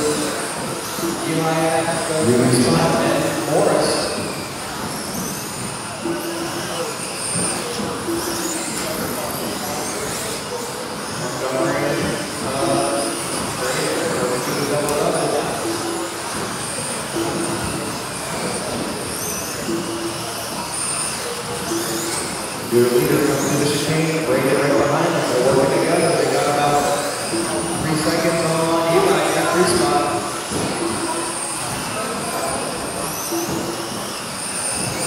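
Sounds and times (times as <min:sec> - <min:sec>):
electric motors whining: 0:00.0 - 0:35.0.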